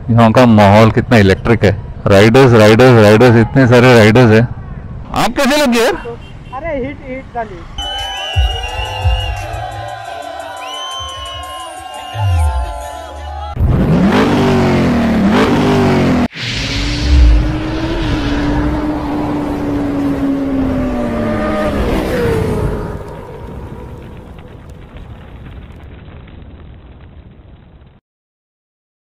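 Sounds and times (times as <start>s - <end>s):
motorcycle engine revving: 13.6s - 24.3s.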